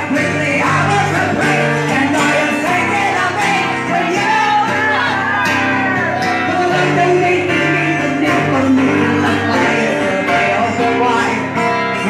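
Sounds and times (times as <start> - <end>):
live acoustic band music: 0.0 - 12.0
strummed acoustic guitar: 0.0 - 12.0.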